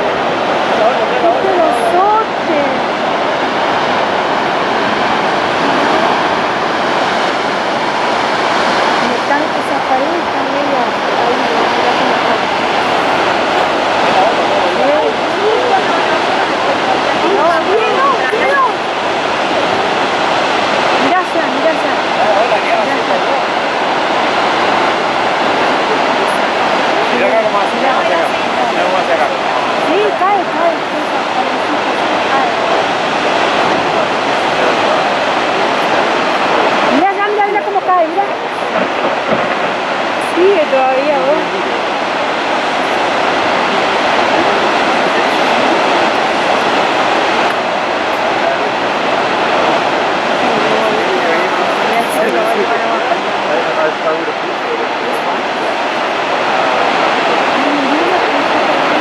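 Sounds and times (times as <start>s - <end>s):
churning water and waves: 0.0s - 59.0s
faint voices: 0.0s - 59.0s.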